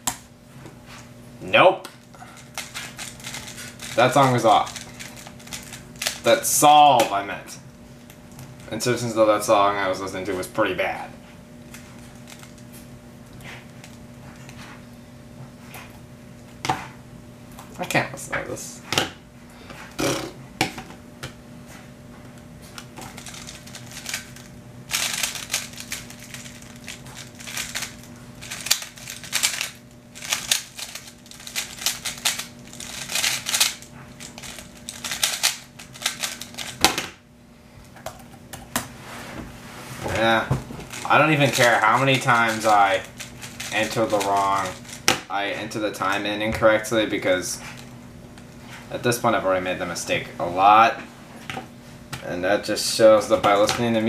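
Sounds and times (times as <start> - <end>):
puzzle cube clacking turns: 2.4 - 6.2, 23.1 - 36.8, 40.9 - 45.0.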